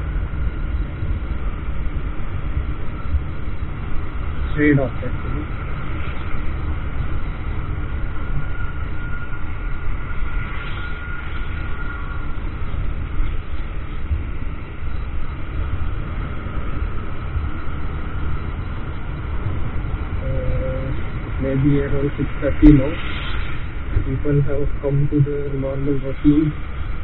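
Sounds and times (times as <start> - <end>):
road noise: 0.0 - 27.0
wind rumble on microphone: 0.0 - 27.0.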